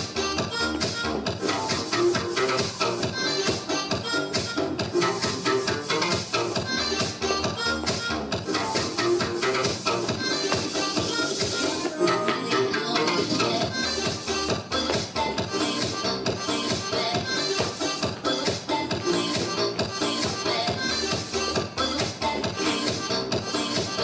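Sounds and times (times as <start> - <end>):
dance music with steady beat: 0.0 - 24.0.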